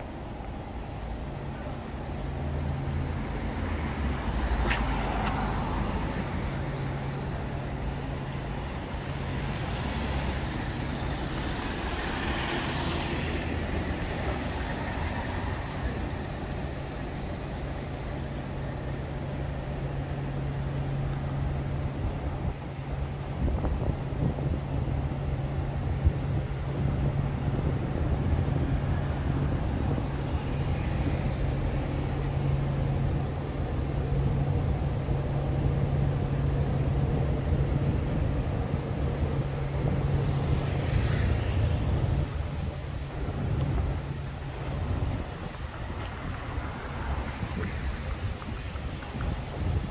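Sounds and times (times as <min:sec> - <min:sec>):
city road traffic: 0:00.0 - 0:49.9.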